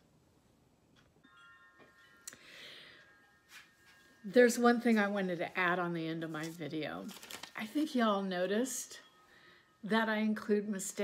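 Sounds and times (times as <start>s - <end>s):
faint high chime: 1.2s - 5.9s, 7.9s - 11.0s.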